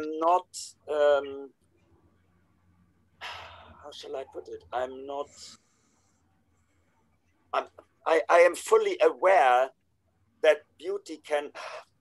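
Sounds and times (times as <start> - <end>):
man speaking: 0.0 - 1.5, 3.8 - 5.6, 7.6 - 9.8, 10.4 - 11.9.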